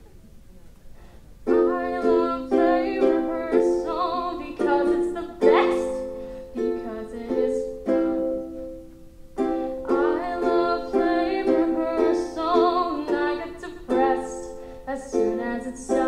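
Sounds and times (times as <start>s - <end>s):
ukulele strumming chords: 1.4s - 16.0s.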